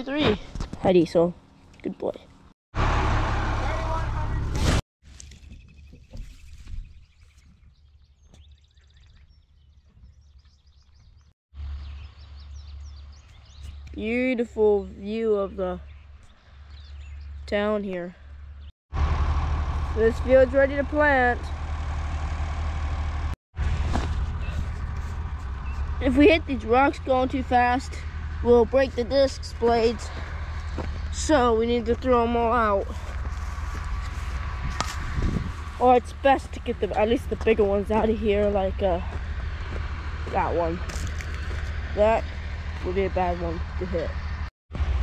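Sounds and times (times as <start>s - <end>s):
birds chirping: 5.4s - 18.7s, 24.4s - 34.6s, 35.6s - 44.5s
low rumble: 18.2s - 45.0s
wind noise on microphone: 33.6s - 35.8s.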